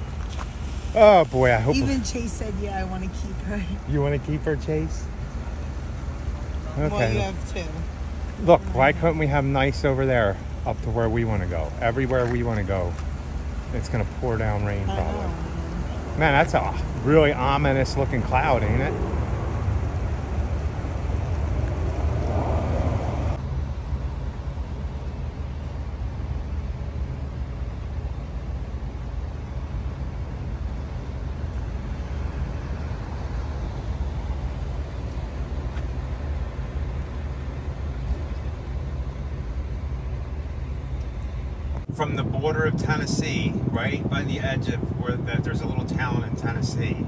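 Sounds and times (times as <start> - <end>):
high hiss: 0.0 - 2.4
car engine rumble inside cabin: 0.0 - 47.0.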